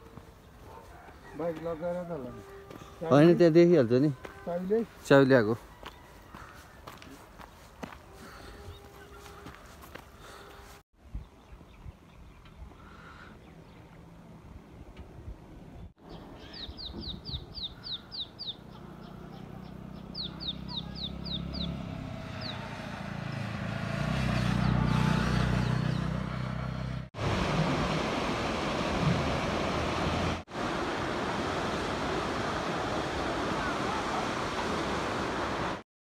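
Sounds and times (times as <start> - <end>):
low rumble of passing vehicle: 18.4 - 32.8.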